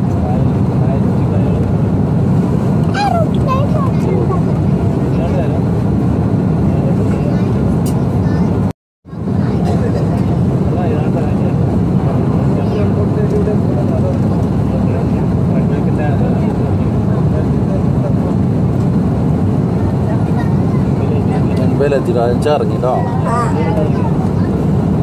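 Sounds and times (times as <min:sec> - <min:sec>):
airliner cabin rumble: 0:00.0 - 0:25.0
faint voices: 0:19.6 - 0:24.8.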